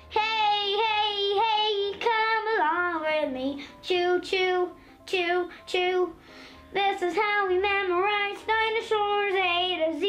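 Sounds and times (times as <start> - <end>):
young boy singing: 0.0 - 10.0.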